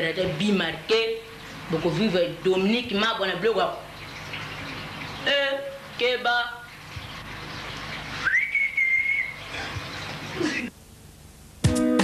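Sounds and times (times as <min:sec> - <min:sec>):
man whistling: 0:08.2 - 0:09.5.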